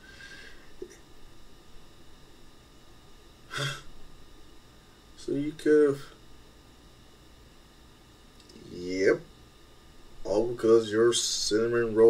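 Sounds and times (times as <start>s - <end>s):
faint steady hiss: 0.0s - 12.0s
low hum: 0.0s - 12.0s.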